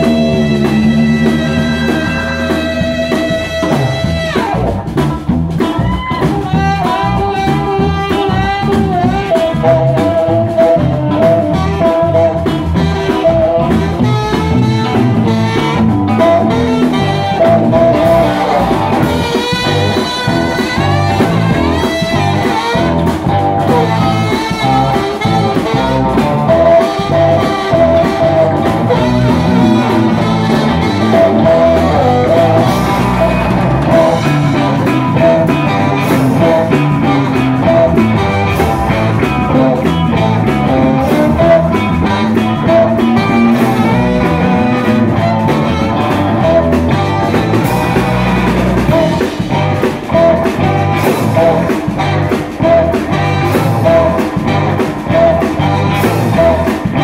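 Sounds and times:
drum kit beat: 0.0s - 57.0s
electric guitar: 0.0s - 57.0s
saxophone lead: 0.0s - 57.0s
upright bass: 0.0s - 57.0s.

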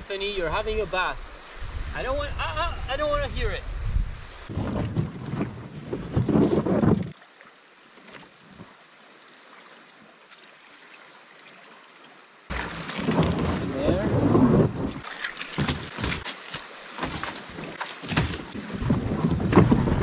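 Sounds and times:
wind buffeting microphone: 1.5s - 7.1s, 13.1s - 15.0s
water sloshing and splashing: 4.4s - 20.0s.

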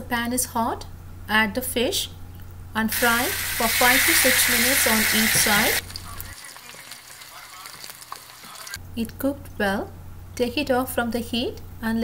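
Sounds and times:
fish sizzling in a frying pan: 2.9s - 8.8s.

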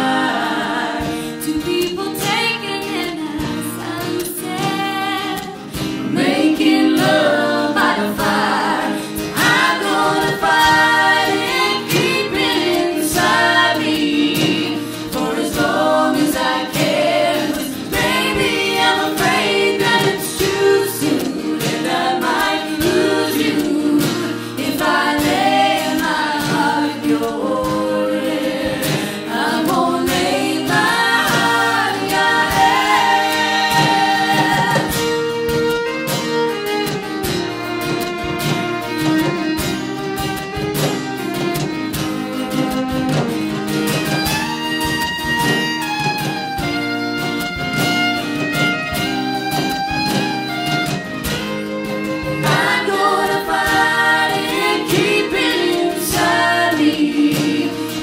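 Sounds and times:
voices singing in harmony: 0.0s - 35.4s, 52.1s - 58.0s
strummed acoustic guitar: 0.0s - 58.0s
hand drum beating: 26.6s - 36.2s, 40.6s - 46.6s.

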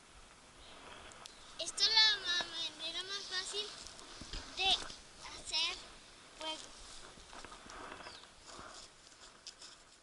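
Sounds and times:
boy's high-pitched voice: 1.6s - 3.8s, 4.5s - 6.8s.

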